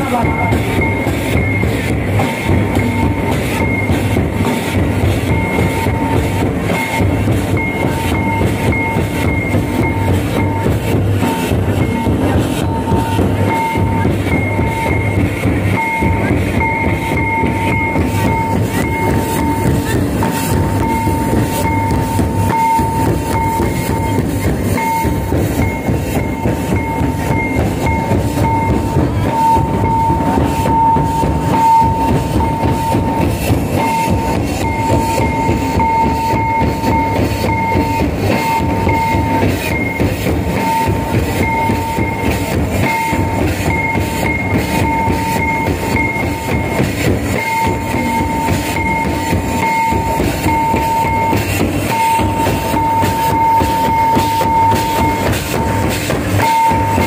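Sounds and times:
dense drumming: 0.0 - 57.0
steady high-pitched tone: 0.0 - 57.0.

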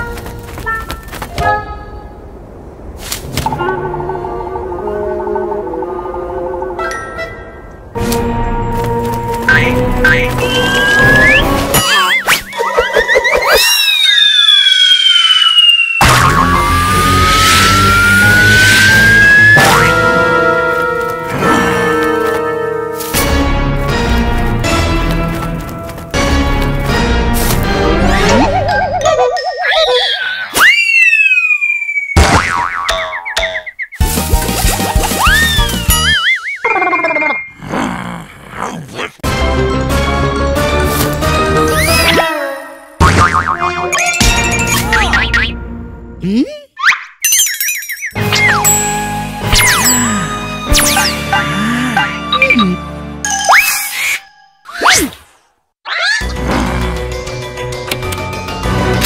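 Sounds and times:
background music: 3.5 - 13.2, 16.1 - 29.6, 39.2 - 46.3, 48.2 - 53.9, 56.2 - 59.0
cartoon background music: 9.3 - 15.0, 26.2 - 31.4, 32.2 - 37.5, 39.2 - 55.1, 55.9 - 59.0
sliding whistle effects: 13.5 - 20.0, 30.6 - 32.2.

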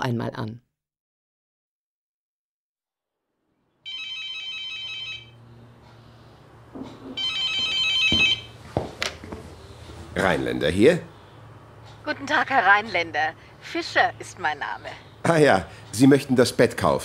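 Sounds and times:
telephone ringing trill: 3.9 - 5.4, 7.1 - 8.6.

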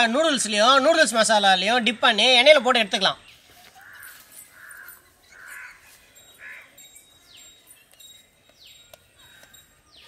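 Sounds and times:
birds calling: 1.4 - 10.0.

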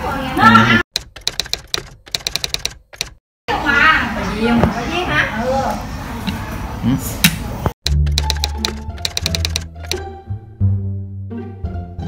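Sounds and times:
typewriter key clicks: 1.0 - 3.2, 7.9 - 10.0.

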